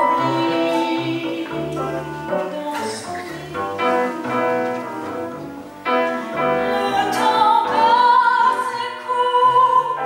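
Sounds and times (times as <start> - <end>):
plucked double bass: 0.0 - 8.8
clarinet: 0.0 - 10.0
grand piano: 0.0 - 10.0.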